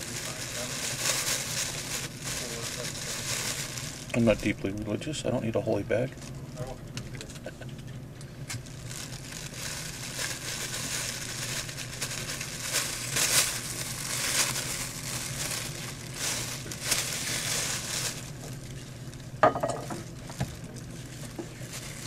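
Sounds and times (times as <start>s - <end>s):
plastic bag crinkling: 0.0s - 4.9s, 8.4s - 22.0s.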